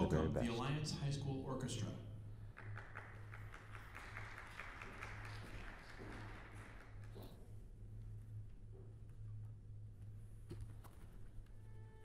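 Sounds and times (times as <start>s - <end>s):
steady low hum: 0.0s - 12.0s
audience applause: 2.6s - 7.2s.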